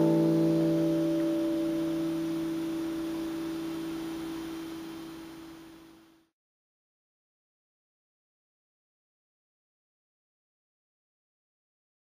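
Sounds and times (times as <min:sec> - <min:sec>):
acoustic guitar chord ringing: 0:00.0 - 0:04.5.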